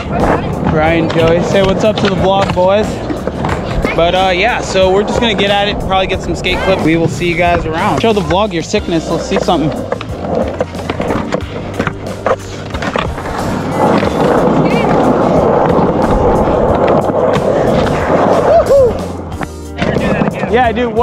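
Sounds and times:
skateboard clacks: 0.0 - 20.6
skateboard wheels rolling on concrete: 0.0 - 21.0.

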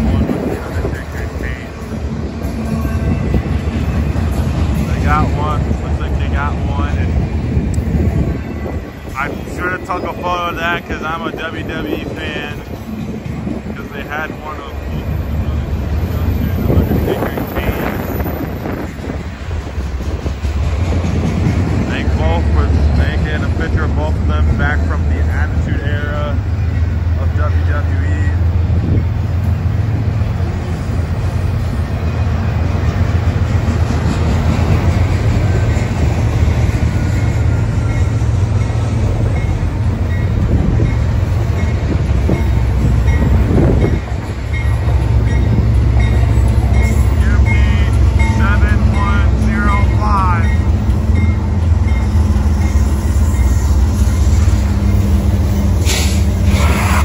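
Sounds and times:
diesel locomotives droning: 0.0 - 57.0
steel wheels on rail: 0.0 - 57.0.

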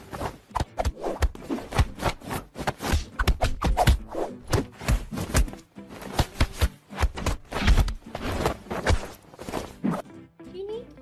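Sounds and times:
soft thumps and slaps: 0.6 - 9.2.

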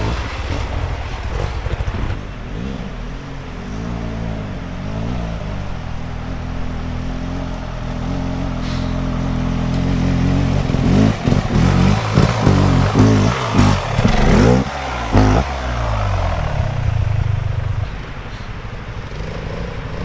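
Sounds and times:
motorcycle engine revving: 0.0 - 20.0.

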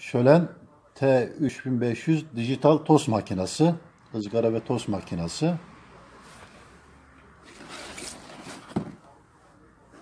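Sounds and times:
cardboard box scraping and rustling: 7.4 - 9.0.

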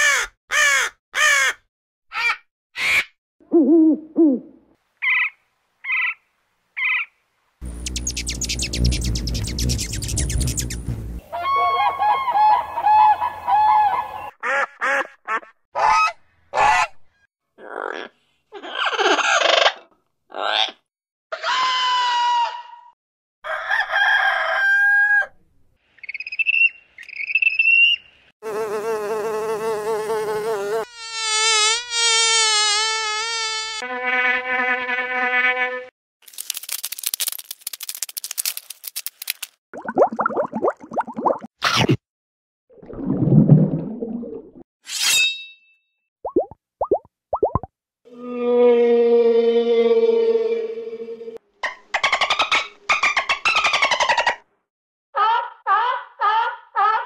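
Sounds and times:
cartoon bird squawks: 0.0 - 3.1
insect buzzing: 7.6 - 11.2, 28.4 - 33.8.

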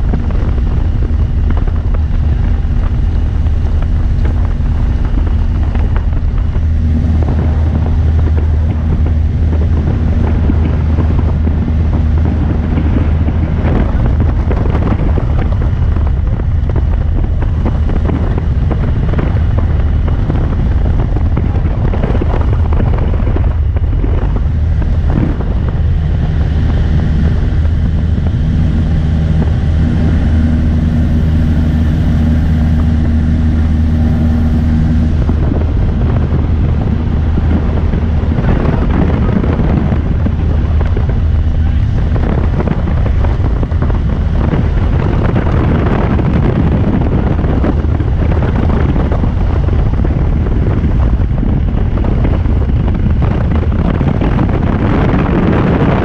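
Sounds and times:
aircraft engine drone: 0.0 - 56.0
wind rushing past airframe: 0.0 - 56.0.

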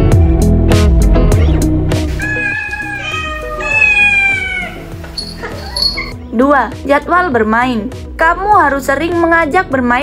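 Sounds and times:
background music: 0.0 - 10.0
cats meowing: 2.2 - 6.2.

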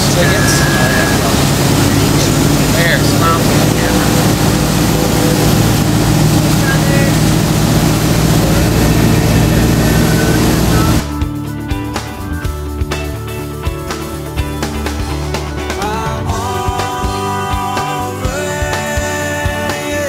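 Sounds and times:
guitar music: 0.0 - 20.0
motorboat engine: 0.0 - 20.0.

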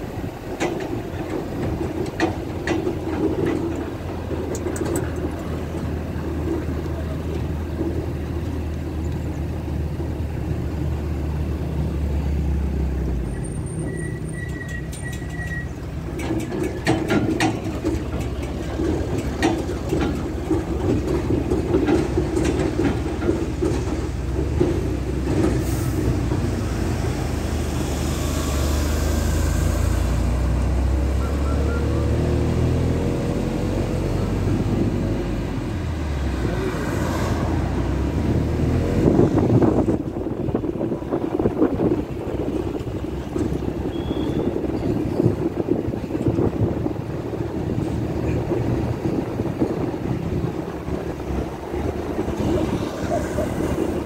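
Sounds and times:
engine and tyre rumble: 0.0 - 54.0
rattling knocks: 14.8 - 25.5.

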